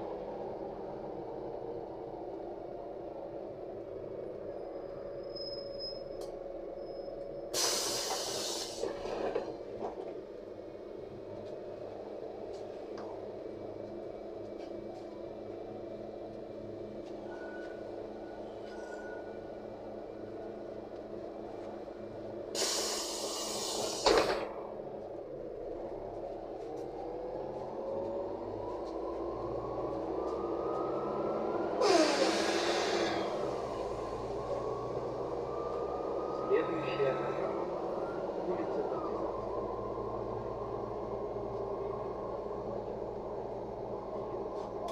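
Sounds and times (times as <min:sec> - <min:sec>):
bus engine drone: 0:00.0 - 0:44.9
bus whine rising in pitch: 0:00.0 - 0:44.9
air brake hisses: 0:07.5 - 0:08.9, 0:22.5 - 0:24.4, 0:31.8 - 0:33.5.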